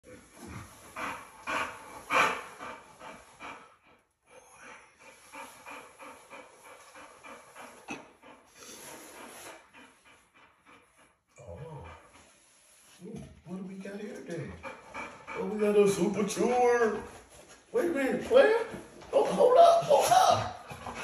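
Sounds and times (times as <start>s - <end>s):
dog panting: 0.0s - 19.4s, 20.4s - 21.0s.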